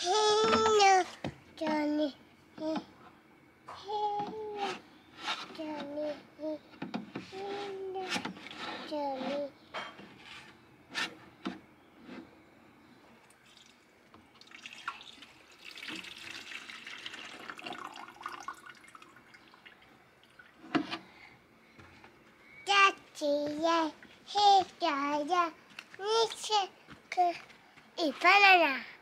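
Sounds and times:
water pouring into watering can: 13.4 - 13.8, 14.4 - 20.6.

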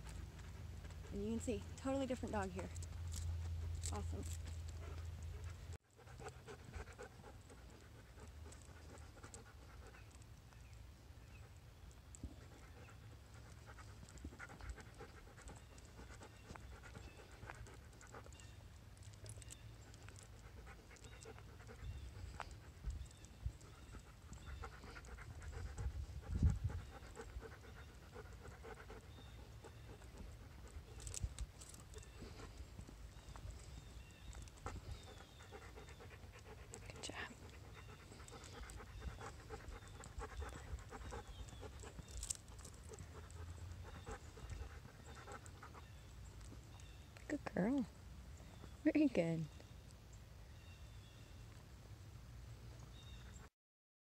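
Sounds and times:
dog panting: 0.0 - 10.4, 11.3 - 47.1
low rumble on microphone: 24.9 - 27.6.

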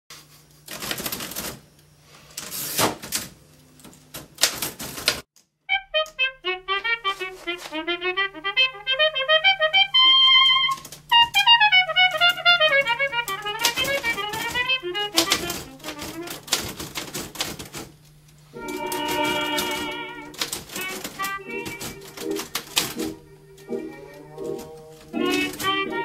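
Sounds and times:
typewriter keys clacking: 0.7 - 1.6, 3.9 - 5.2, 10.2 - 18.0, 18.6 - 23.2, 24.1 - 26.0
brass instrument melody: 5.7 - 17.1, 18.5 - 26.0.

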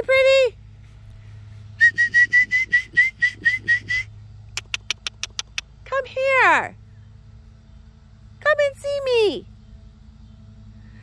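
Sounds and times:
sharp tongue clicks: 4.5 - 5.7
squeaky mouth chirps: 4.6 - 5.6.

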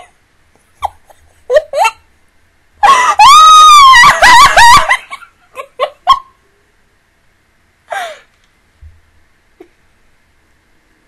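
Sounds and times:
woman squealing: 2.8 - 5.0.

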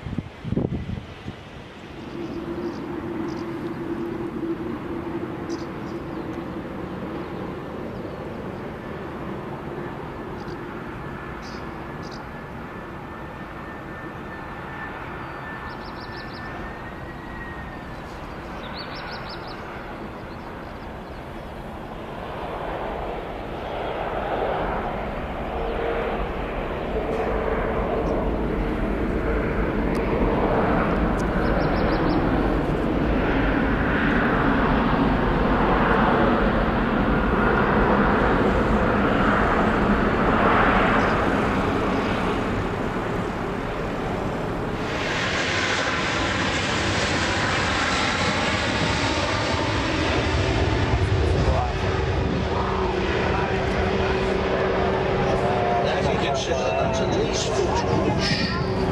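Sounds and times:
jet engines roaring: 0.0 - 58.9.

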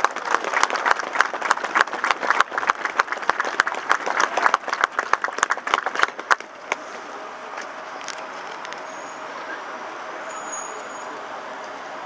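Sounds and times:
city street traffic hum: 0.0 - 12.0.

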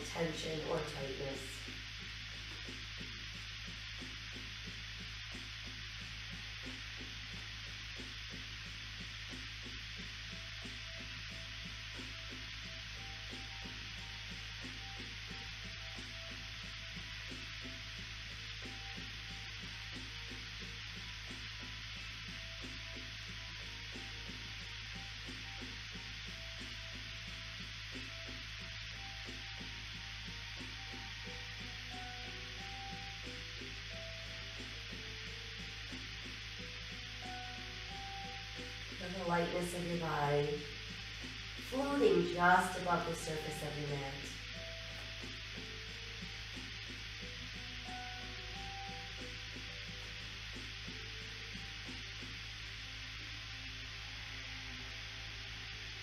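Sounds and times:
faint slow background music: 0.0 - 56.0
low hum: 0.0 - 56.0
steady hiss: 0.0 - 56.0.

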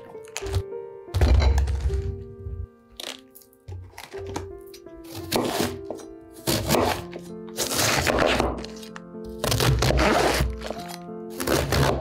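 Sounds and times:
knife cracking through cabbage: 0.0 - 0.7, 3.0 - 12.0
soft music with held notes: 0.0 - 12.0.

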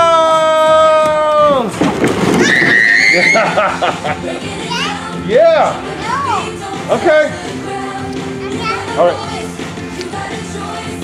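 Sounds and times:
child squealing: 2.4 - 3.6
excited voices: 2.4 - 7.3
laughter: 3.2 - 4.5.

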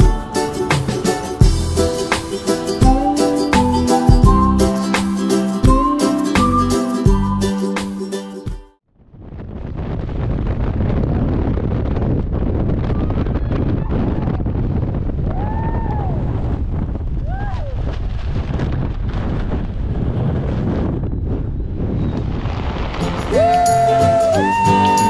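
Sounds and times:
wind roaring over microphone: 9.0 - 24.7
person crying out: 23.3 - 25.0.

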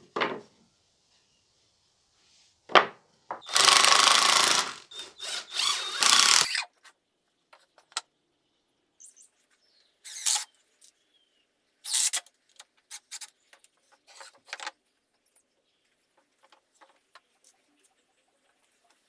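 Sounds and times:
wood knocking: 0.0 - 0.5, 2.7 - 4.6
power drill running: 3.4 - 6.6.

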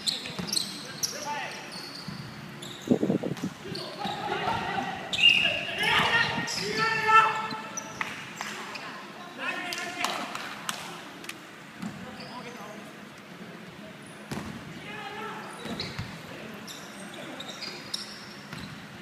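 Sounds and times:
sneakers squeaking on wooden floor: 0.0 - 4.3, 11.8 - 12.6, 15.5 - 19.0
players shouting: 3.7 - 7.7.

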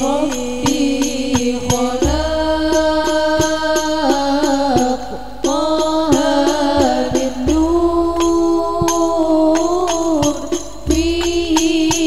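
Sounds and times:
devotional chant-like singing: 0.0 - 12.0
frame drum beat: 0.0 - 12.0.

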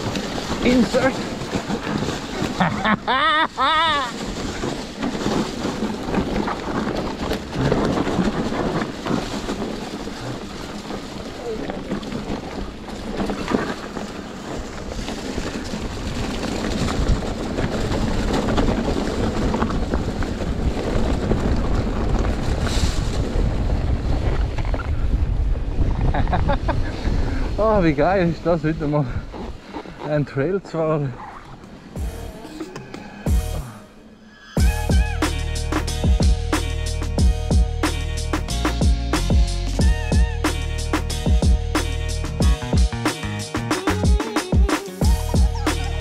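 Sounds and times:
wind buffeting microphone: 0.0 - 30.6
bike rattling on dirt trail: 0.0 - 32.3, 34.6 - 46.0.

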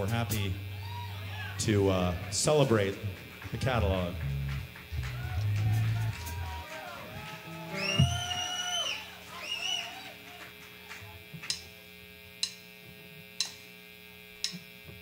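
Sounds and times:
amplifier hum: 0.0 - 15.0
high held tones: 4.8 - 10.4
drumstick clicks: 12.4 - 12.7, 13.4 - 13.6, 14.4 - 14.7.

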